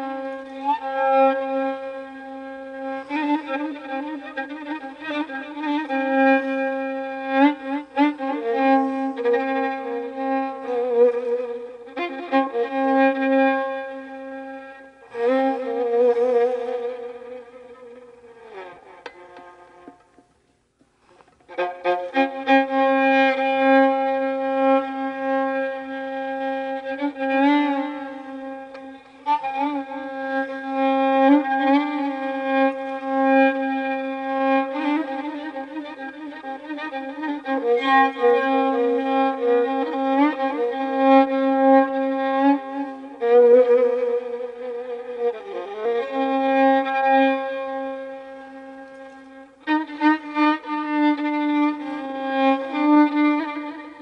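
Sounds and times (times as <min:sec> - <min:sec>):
violin playing slow melody: 0:00.0 - 0:54.0.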